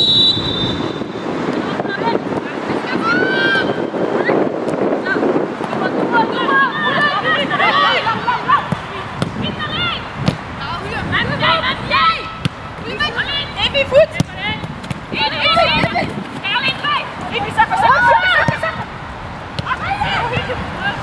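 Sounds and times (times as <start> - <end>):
women shouting: 2.9 - 3.8, 6.1 - 10.1, 15.2 - 18.8, 19.6 - 21.0
football being kicked: 8.7 - 9.4, 10.2 - 10.5, 14.1 - 15.1.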